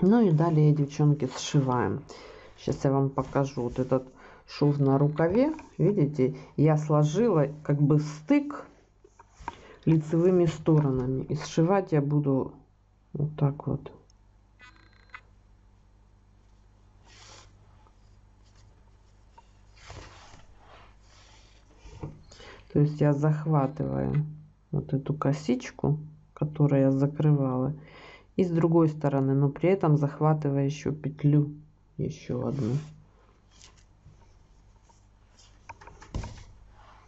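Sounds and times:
yarn rustling through fabric: 0.0s - 11.2s, 17.0s - 22.0s.

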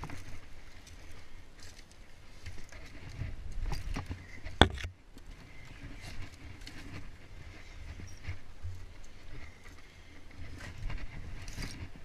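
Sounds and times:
scuffs and scrapes on rock: 0.0s - 12.0s.

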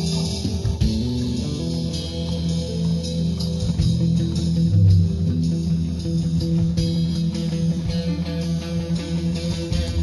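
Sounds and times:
guitar playing: 0.0s - 10.0s
sustained bass line: 0.0s - 10.0s.

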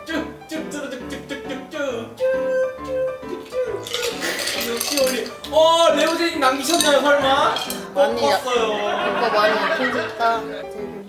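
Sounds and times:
plucked string music: 2.2s - 11.0s.

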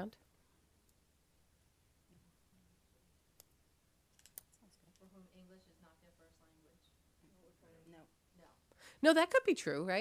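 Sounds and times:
faint sharp clicks: 3.4s - 5.1s.

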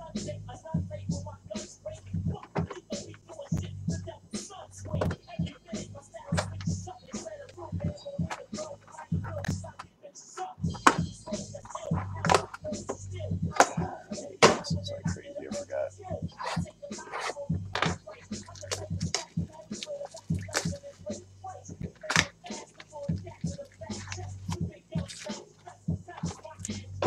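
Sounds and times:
cardboard tapping and scraping: 11.8s - 12.5s.

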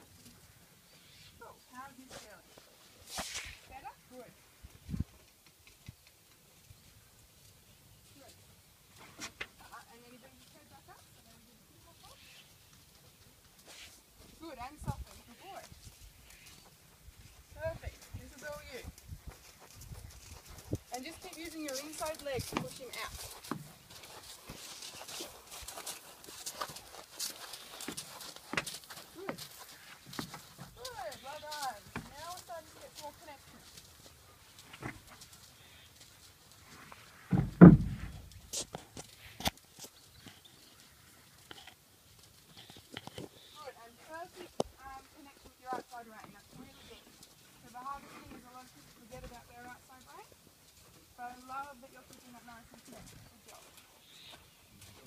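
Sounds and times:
horse hoofbeats: 15.0s - 36.6s
loud thump: 37.3s - 38.3s.

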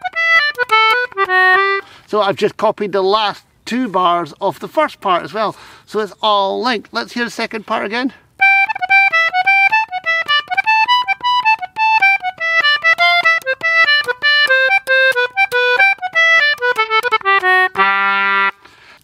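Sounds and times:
concertina playing a jig: 0.0s - 1.9s, 8.4s - 18.7s.

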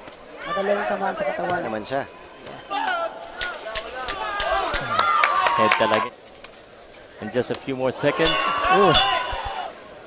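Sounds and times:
people shouting: 2.7s - 6.0s, 8.0s - 9.9s.

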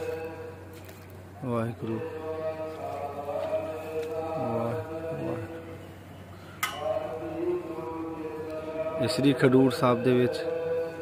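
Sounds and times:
devotional chanting: 0.0s - 11.0s.

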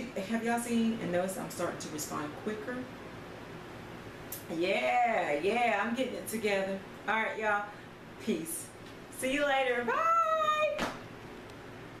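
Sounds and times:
woman saying bye: 9.2s - 10.8s.

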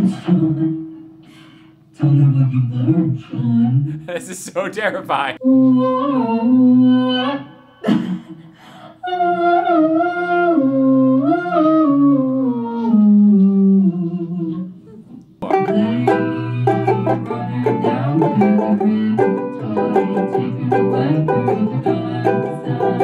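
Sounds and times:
banjo ukulele picked and strummed: 15.4s - 23.0s.

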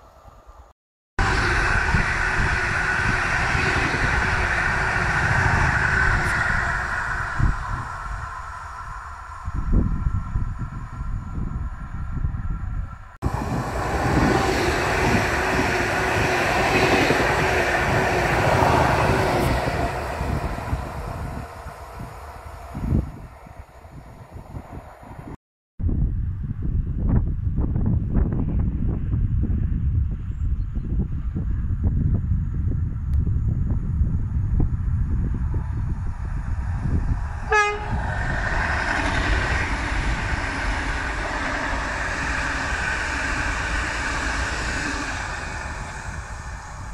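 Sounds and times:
train running hum: 1.2s - 25.4s, 26.5s - 46.9s
train wheels on rail: 1.2s - 25.4s, 33.1s - 46.9s
wind buffeting microphone: 1.2s - 46.9s.

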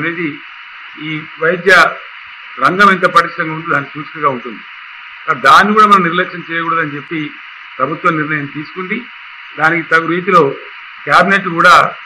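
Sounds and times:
man talking: 0.0s - 0.4s, 1.0s - 4.6s, 5.3s - 12.0s
steady hiss: 0.0s - 12.0s.

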